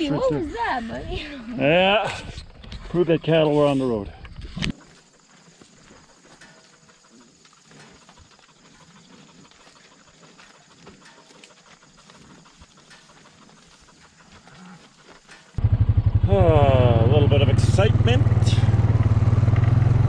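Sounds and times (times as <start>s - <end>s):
hooves crunching on gravel: 2.0s - 15.6s.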